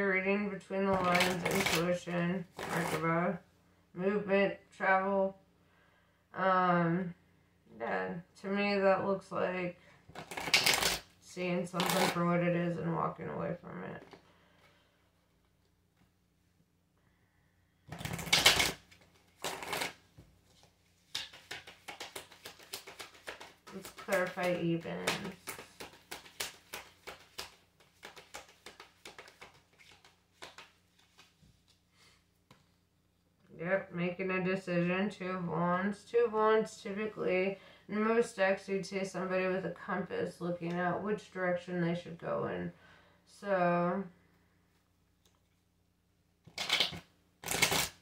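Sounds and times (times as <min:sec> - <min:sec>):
cards being shuffled: 0:00.9 - 0:03.1, 0:10.1 - 0:12.3, 0:17.9 - 0:31.8, 0:46.5 - 0:48.0.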